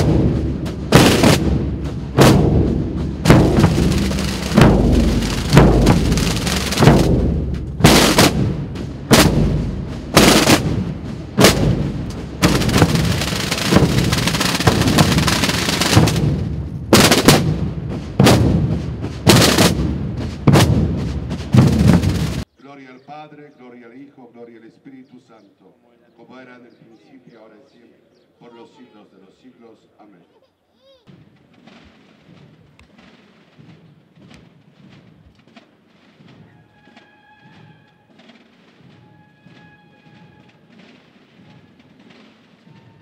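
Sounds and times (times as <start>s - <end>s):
drum roll: 0.0s - 22.4s, 31.1s - 43.0s
snare and bass drums playing: 0.0s - 22.5s, 31.1s - 43.0s.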